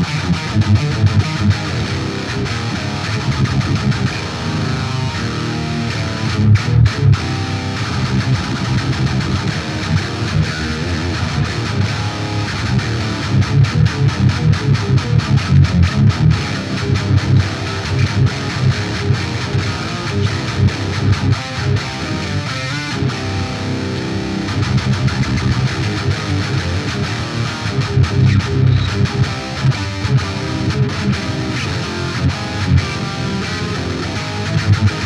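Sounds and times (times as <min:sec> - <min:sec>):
distorted electric guitar riff: 0:00.0 - 0:35.0.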